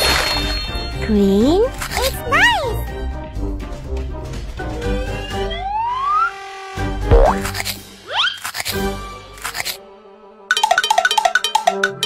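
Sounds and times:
children's background music: 1.0 - 6.4, 10.2 - 12.0
cartoon whistle glides: 5.0 - 6.4.

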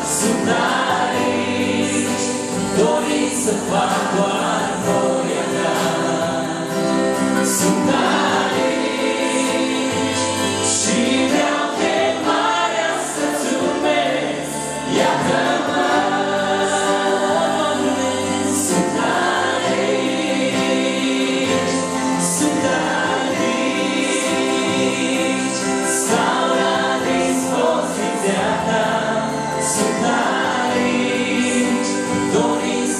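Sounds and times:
congregation singing a hymn: 0.0 - 32.9.

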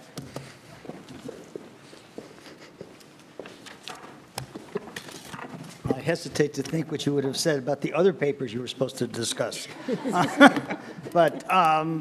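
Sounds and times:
footsteps on wooden floor: 0.1 - 6.0
man speaking: 5.8 - 12.0.

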